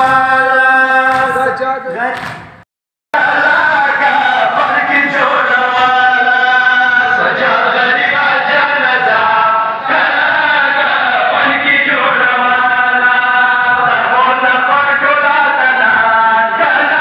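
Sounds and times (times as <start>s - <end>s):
men chanting a mourning lament: 0.0s - 2.1s, 3.2s - 17.0s.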